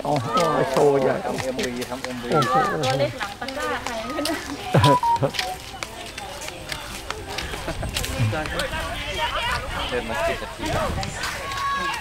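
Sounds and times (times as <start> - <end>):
people talking indistinctly: 0.0 - 11.8.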